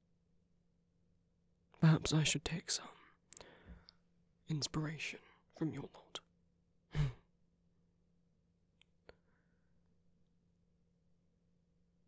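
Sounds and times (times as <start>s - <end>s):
man sighing: 6.9s - 7.2s.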